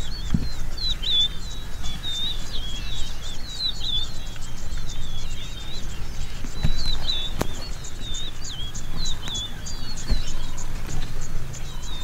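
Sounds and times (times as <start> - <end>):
birds singing warbling chirps: 0.0 - 12.0.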